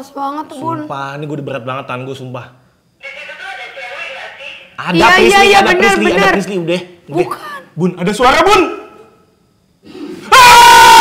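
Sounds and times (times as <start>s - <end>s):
high-pitched frightened scream: 10.2s - 11.0s.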